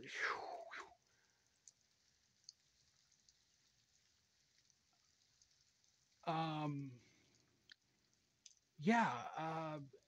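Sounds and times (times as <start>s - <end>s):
faint steady hiss: 0.0s - 10.0s
tiny ticks: 1.6s - 6.3s, 7.3s - 8.7s.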